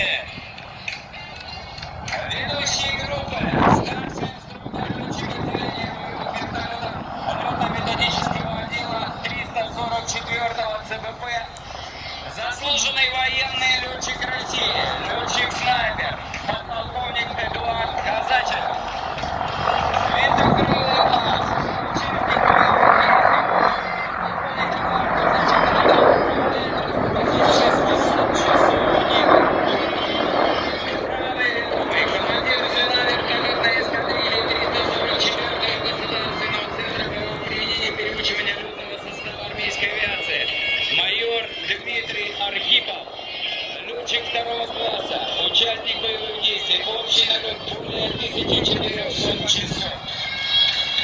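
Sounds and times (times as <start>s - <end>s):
helicopters flying over: 0.0s - 51.0s
indistinct voices: 0.0s - 51.0s.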